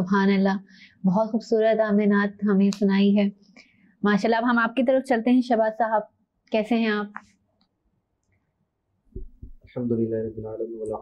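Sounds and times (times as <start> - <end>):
woman speaking: 0.0 - 3.4, 4.0 - 7.2.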